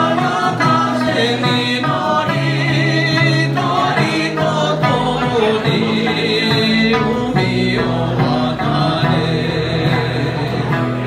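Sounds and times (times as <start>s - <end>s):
group singing in chorus: 0.0s - 11.0s
plucked lute: 0.0s - 11.0s
strummed acoustic guitar: 0.0s - 11.0s.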